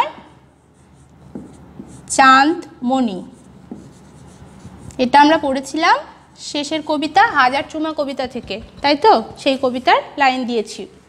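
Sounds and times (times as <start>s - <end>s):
marker scratching on whiteboard: 0.0s - 5.8s, 6.6s - 9.9s
marker tip tapping: 3.7s - 4.0s.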